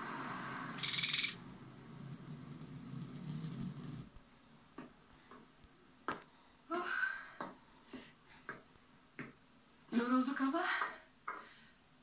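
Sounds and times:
television low hum: 0.0 - 12.0.

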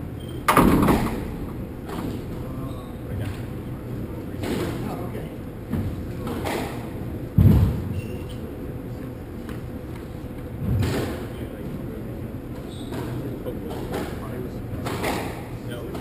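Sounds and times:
heavy low thud: 7.3 - 8.0
people talking indistinctly: 10.5 - 16.0.

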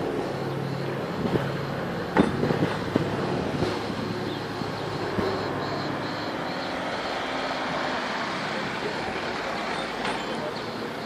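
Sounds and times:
propeller airplane droning: 0.0 - 11.0
faint high chirping: 4.1 - 7.6.

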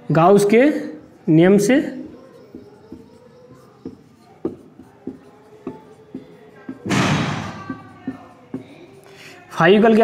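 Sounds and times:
marker pen writing on whiteboard: 0.4 - 10.0.

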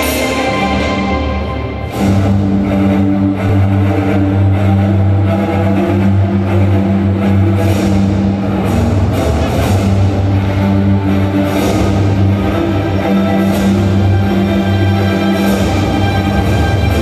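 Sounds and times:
background music: 0.0 - 17.0
deep steady bass: 0.0 - 17.0.

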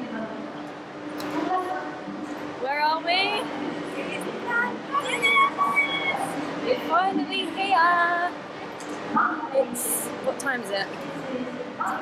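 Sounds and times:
faint voices: 0.0 - 12.0
low background hum: 0.0 - 12.0.

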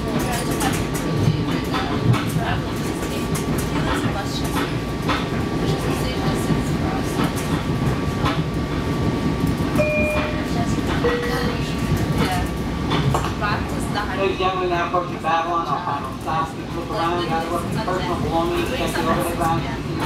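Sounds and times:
train wheels rumbling on rails: 0.0 - 20.0
track clicks: 9.7 - 12.2.

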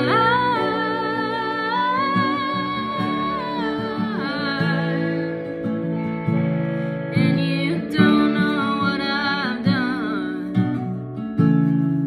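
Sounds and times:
woman singing long note: 0.0 - 5.6
acoustic guitar strummed: 0.0 - 12.0.

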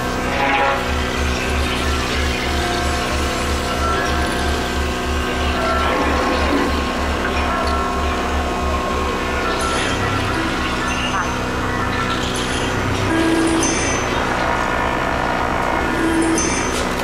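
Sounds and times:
low electronic pulse: 0.0 - 17.0
sustained synthesizer tones: 0.0 - 17.0.

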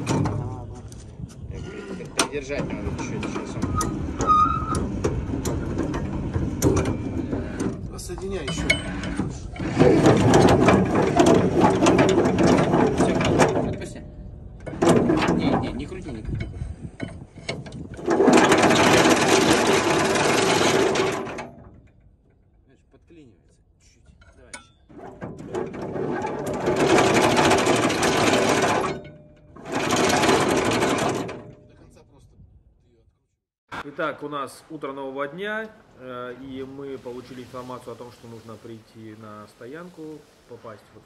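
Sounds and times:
anchor chain rattling: 2.2 - 22.6, 24.1 - 31.7.

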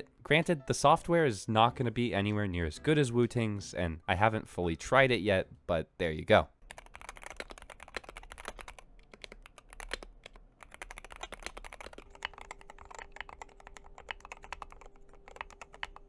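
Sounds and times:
faint steady hum: 3.8 - 16.0
fast keyboard typing: 6.6 - 16.0.

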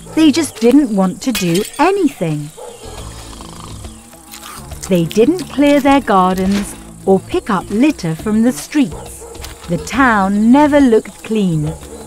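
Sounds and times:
flies buzzing: 2.2 - 12.0.

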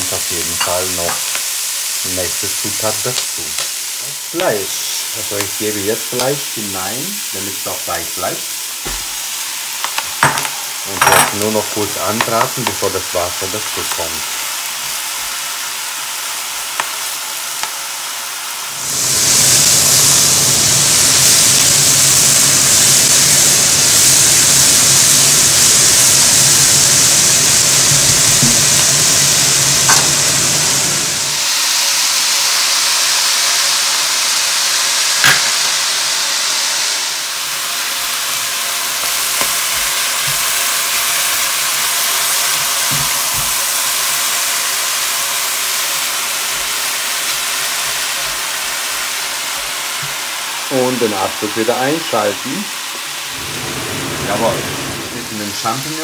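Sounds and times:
food sizzling in a pot: 0.0 - 56.0.

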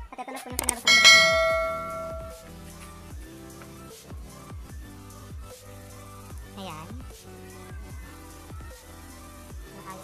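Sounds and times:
bell-like chime: 0.8 - 2.5.

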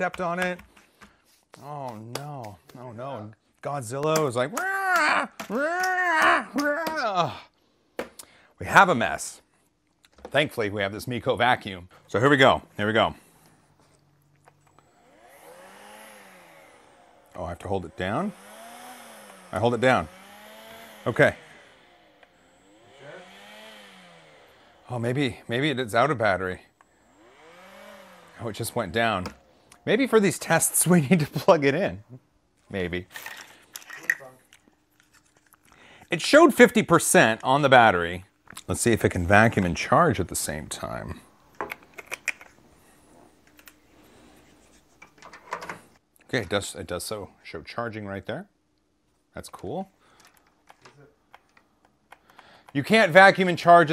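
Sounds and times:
vacuum motor whine: 14.5 - 25.5, 26.7 - 29.8.

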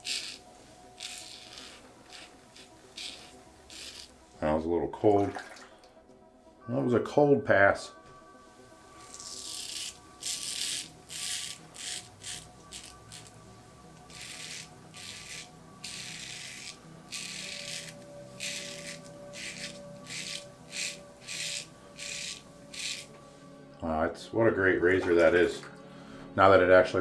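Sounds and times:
razor scraping stubble: 0.0 - 4.1, 9.0 - 23.2
faint background music: 0.0 - 27.0.

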